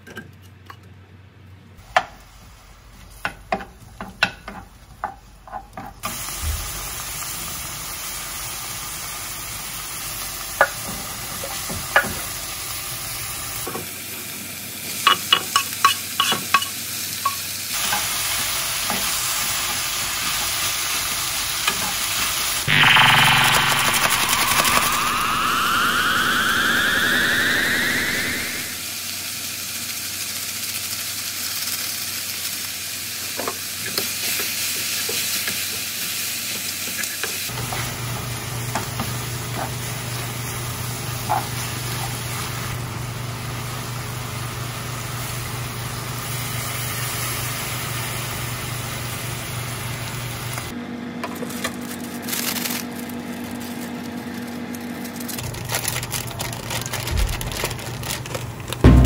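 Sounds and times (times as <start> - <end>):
vegetables sizzling in a frying pan: 1.8 - 22.7, 28.9 - 50.7
rising whine: 22.7 - 28.8.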